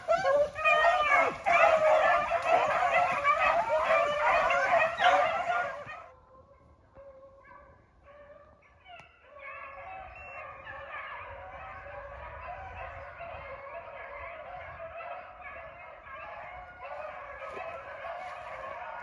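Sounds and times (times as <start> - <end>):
dogs baying: 0.0 - 6.1, 7.0 - 19.0.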